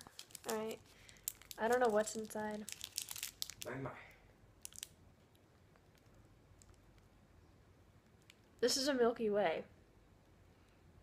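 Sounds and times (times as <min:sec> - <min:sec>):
plastic wrapper crinkling and tearing: 0:00.0 - 0:03.7, 0:04.6 - 0:06.8.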